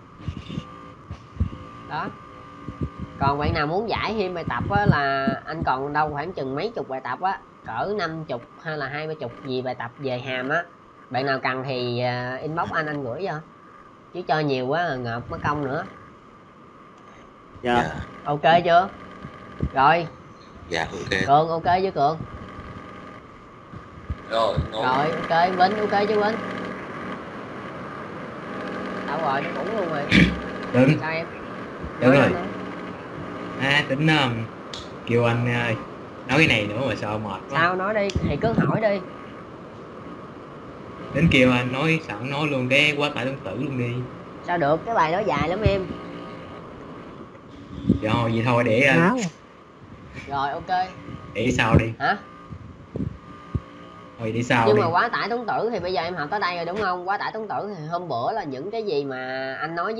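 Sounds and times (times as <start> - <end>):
faint high whine: 0.0 - 59.9
faint hum: 0.0 - 59.9
soft low thumps: 0.1 - 6.6, 17.6 - 22.8, 23.6 - 25.0, 31.7 - 32.5, 38.1 - 39.0, 51.0 - 53.7
man saying a word: 17.7 - 18.0, 20.7 - 21.3, 24.3 - 25.0, 32.0 - 32.4, 41.2 - 42.0, 48.0 - 49.3
background hiss: 23.7 - 57.0.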